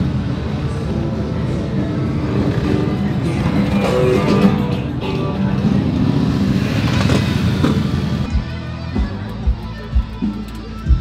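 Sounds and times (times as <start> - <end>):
motorcycle engine running: 0.5 - 11.0
music with kick-drum beat: 8.3 - 11.0.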